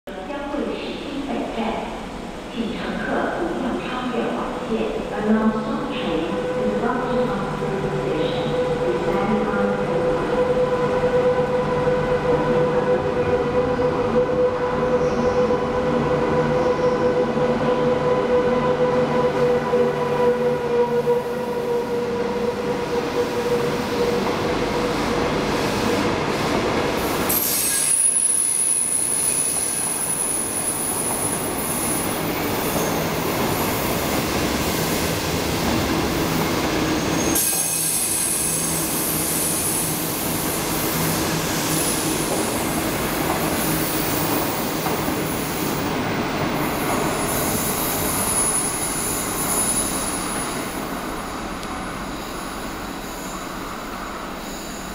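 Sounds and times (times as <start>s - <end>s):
electric locomotive humming: 0.2s - 54.9s
train wheel squeal: 27.0s - 33.8s, 36.9s - 45.8s, 46.6s - 54.9s.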